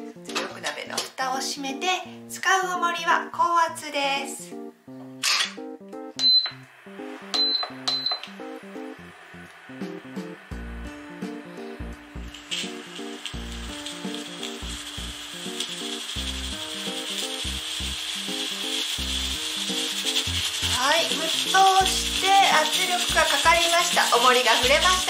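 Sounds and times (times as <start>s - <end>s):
pressure cooker steam hiss: 6.2s - 25.0s.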